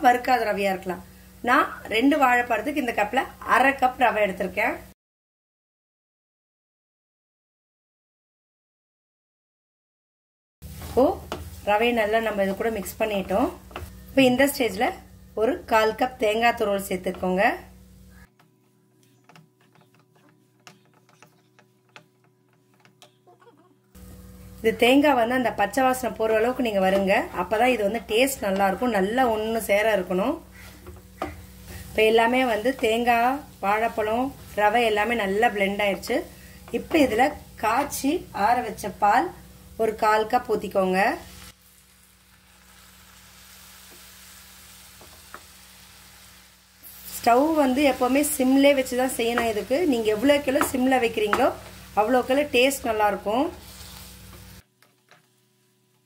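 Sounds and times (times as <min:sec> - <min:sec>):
milk sizzling in a hot pan: 0:10.6 - 0:56.0
wooden spatula scraping nonstick pan: 0:18.1 - 0:23.4, 0:30.5 - 0:38.0, 0:46.9 - 0:55.4.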